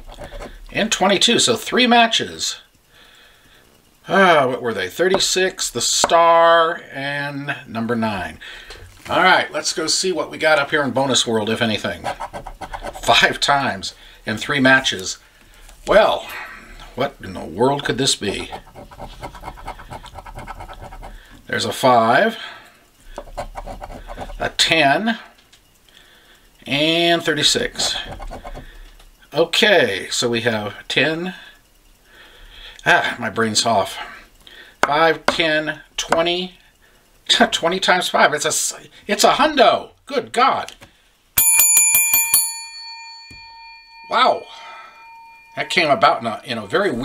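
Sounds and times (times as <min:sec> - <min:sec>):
coin scratching lottery ticket: 0:00.0 - 0:00.6, 0:11.8 - 0:13.5, 0:18.0 - 0:21.2, 0:23.2 - 0:24.6, 0:27.6 - 0:28.6
small bell rung rapidly: 0:41.4 - 0:47.0.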